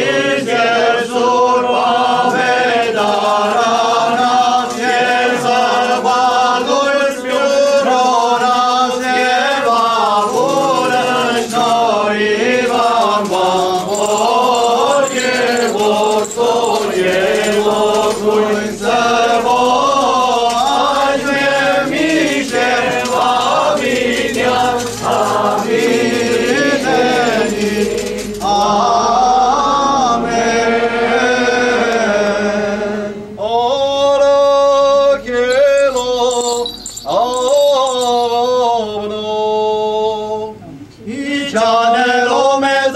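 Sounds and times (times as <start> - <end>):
voices singing liturgical chant: 0.0 - 42.9.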